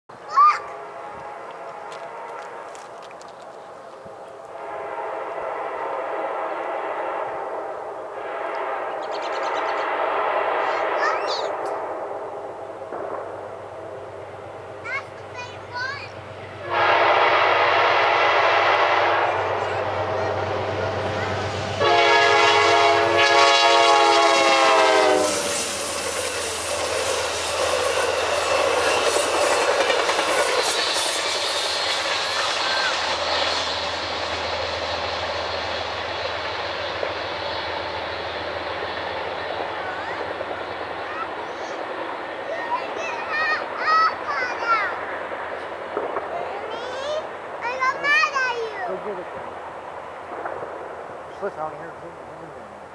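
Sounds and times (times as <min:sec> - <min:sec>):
locomotive horn blasts: 0:00.1 - 0:03.0, 0:04.5 - 0:11.0, 0:16.6 - 0:25.8
train wheels on rails: 0:00.2 - 0:52.9.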